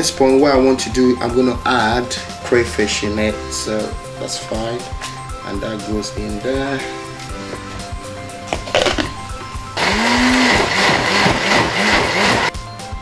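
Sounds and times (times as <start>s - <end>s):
blender motor chopping: 8.7s - 9.2s, 9.8s - 12.5s.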